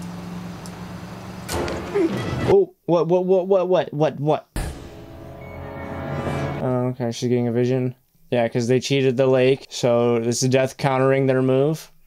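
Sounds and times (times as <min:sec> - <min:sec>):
car engine and road hum: 0:00.0 - 0:02.4.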